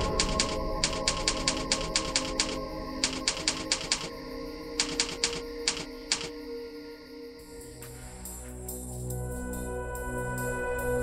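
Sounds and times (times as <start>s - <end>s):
typewriter key clicks: 0.0s - 4.1s, 4.8s - 6.3s
dark music drone: 0.0s - 11.0s.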